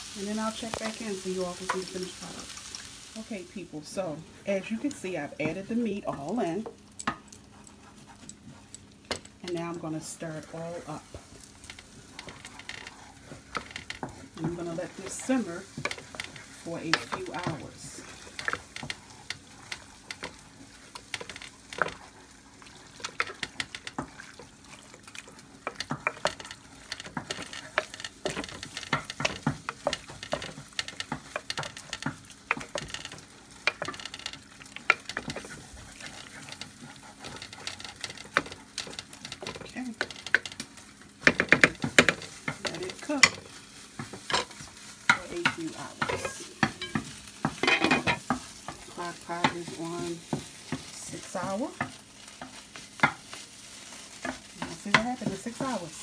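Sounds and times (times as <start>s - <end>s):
spoon stirring thick chili: 10.8s - 56.0s
spoon scraping and knocking pot: 25.1s - 53.2s.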